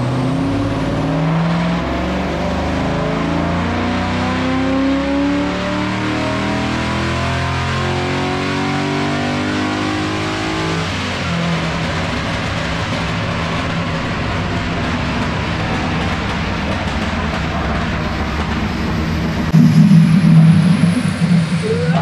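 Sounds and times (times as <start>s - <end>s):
car engine revving on dyno: 0.0s - 12.3s.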